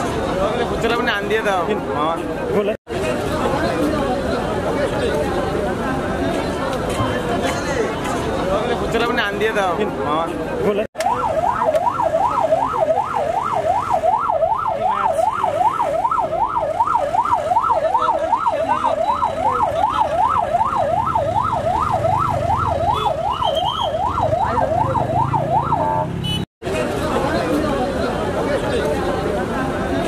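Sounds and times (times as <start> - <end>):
crowd chatter: 0.0 - 30.0
siren wailing: 11.0 - 26.1.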